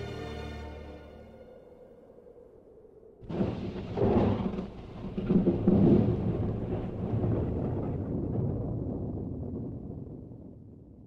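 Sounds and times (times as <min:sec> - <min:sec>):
thunder rumbling: 0:02.0 - 0:11.0
rain: 0:03.2 - 0:11.0.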